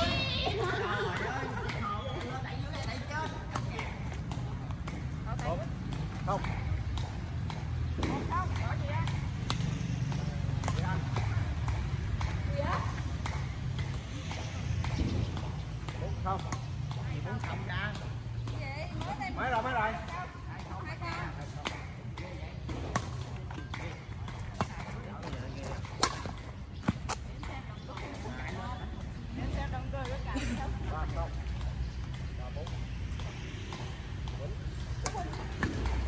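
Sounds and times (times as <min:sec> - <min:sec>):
rackets striking shuttlecock: 0:00.0 - 0:36.0.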